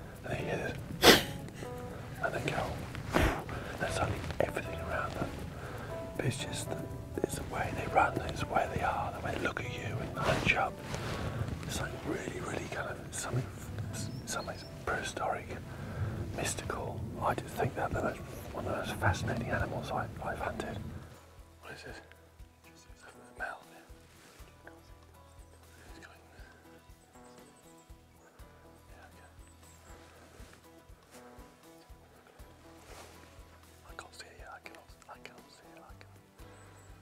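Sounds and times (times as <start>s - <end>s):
man whispering: 0.0s - 0.9s, 1.5s - 24.0s, 25.8s - 26.6s, 28.8s - 29.4s, 33.8s - 36.2s
soft background music: 0.0s - 37.0s.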